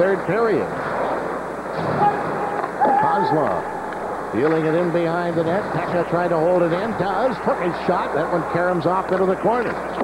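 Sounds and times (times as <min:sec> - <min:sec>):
commentator speaking: 0:04.4 - 0:09.8.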